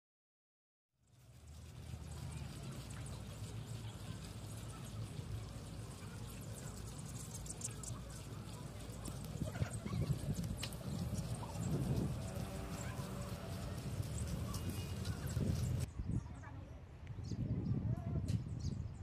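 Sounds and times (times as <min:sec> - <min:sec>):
faint voices of passers-by: 0:01.0 - 0:18.9
footsteps on packed-earth path: 0:01.2 - 0:15.9.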